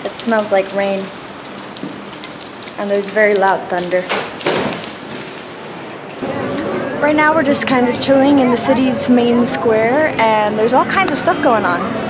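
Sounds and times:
rain falling: 0.0s - 6.2s
crowd voices in open square: 6.2s - 12.0s.

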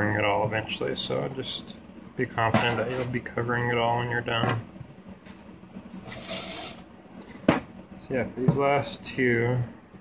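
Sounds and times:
faint steady hum: 0.0s - 10.0s
brief scraping: 6.0s - 6.8s.

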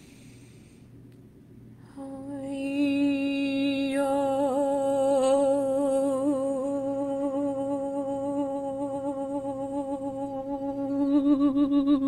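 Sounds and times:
woman humming a sustained note: 1.8s - 12.0s.

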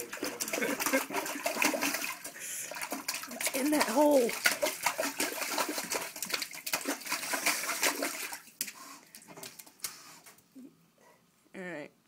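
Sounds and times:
dog splashing in toilet water: 0.0s - 10.1s.

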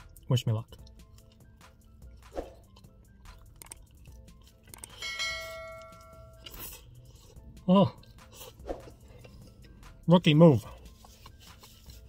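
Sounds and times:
faint background music: 0.0s - 12.0s
chewing clicks: 0.8s - 1.8s, 2.4s - 5.0s
bell-like chime: 5.0s - 6.4s.

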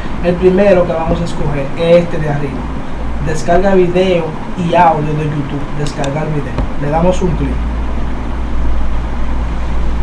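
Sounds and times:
steady low rumble: 5.9s - 8.0s.

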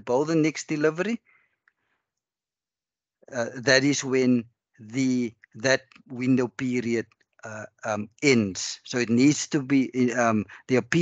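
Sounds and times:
person speaking: 0.0s - 1.2s, 3.3s - 11.0s.

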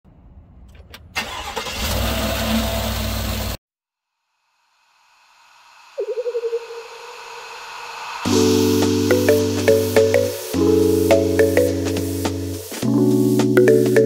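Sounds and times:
rising hiss with wavering tone: 5.1s - 13.3s.

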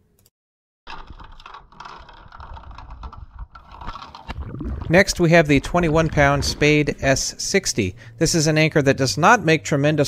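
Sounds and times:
crackling clicks against housing: 0.9s - 4.4s
muffled underwater rumble: 3.0s - 8.1s.

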